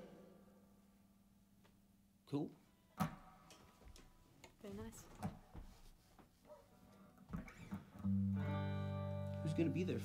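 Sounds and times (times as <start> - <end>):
sung note and guitar: 8.0 - 10.0.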